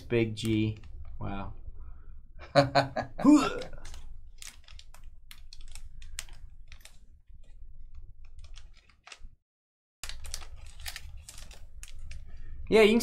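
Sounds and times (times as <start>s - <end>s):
computer keyboard typing: 3.8s - 7.0s, 8.3s - 9.2s.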